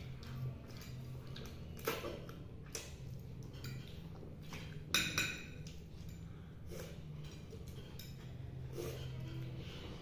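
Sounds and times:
forks scraping and clinking on plates: 0:00.0 - 0:02.4, 0:03.0 - 0:10.0
low steady hum: 0:00.0 - 0:10.0.

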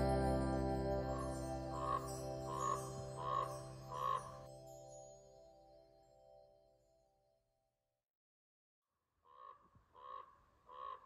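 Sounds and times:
crow cawing: 0:01.8 - 0:04.3, 0:09.3 - 0:11.0.

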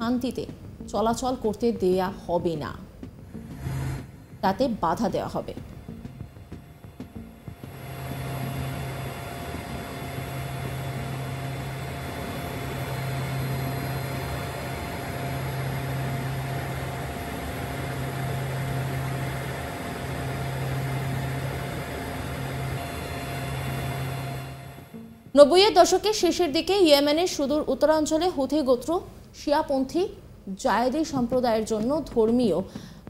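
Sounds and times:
low hum cutting in and out: 0:02.8 - 0:25.4
aircraft engine drone: 0:03.0 - 0:25.3.

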